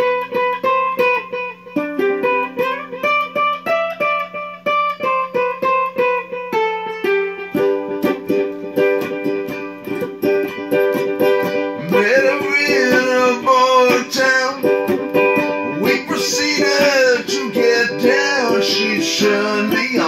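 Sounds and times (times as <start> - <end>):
ukulele picked melody and strumming: 0.0 - 20.0.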